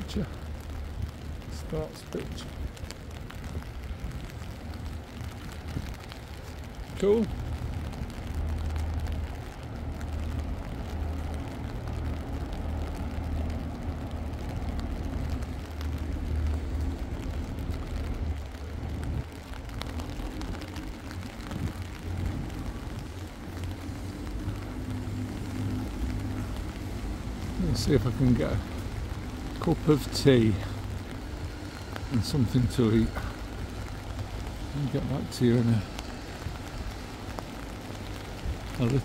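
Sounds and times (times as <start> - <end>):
continuous low rumble: 0.0 - 39.0
steady rain: 0.0 - 39.0.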